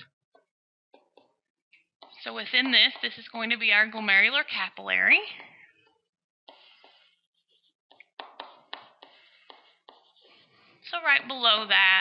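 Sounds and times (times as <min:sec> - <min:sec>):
stylus tapping on tablet screen: 0:06.5 - 0:07.1, 0:07.9 - 0:10.3.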